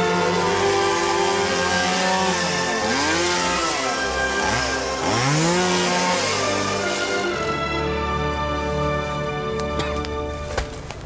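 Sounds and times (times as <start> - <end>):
chainsaw revving: 0.0 - 7.6
background music: 0.0 - 11.0.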